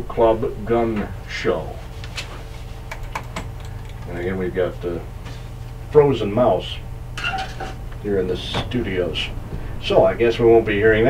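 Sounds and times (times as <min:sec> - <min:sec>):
low studio hum: 0:00.0 - 0:11.0
computer keyboard clicks: 0:02.9 - 0:04.1.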